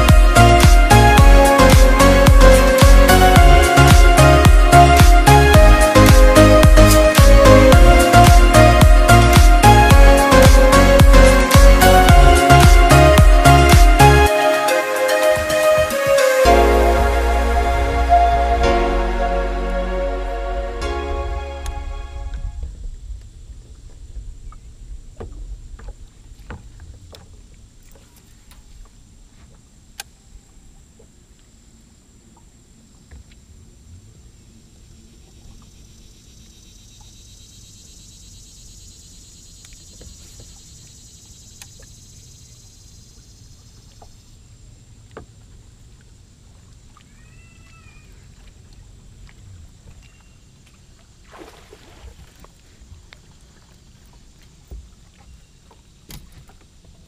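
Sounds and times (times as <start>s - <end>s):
open water ambience: 0.0s - 57.0s
fish splashing in water: 50.7s - 52.7s.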